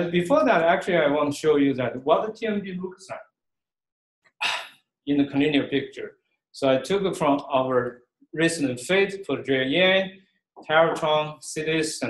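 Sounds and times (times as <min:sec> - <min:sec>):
man speaking: 0:00.0 - 0:03.2, 0:04.4 - 0:12.0.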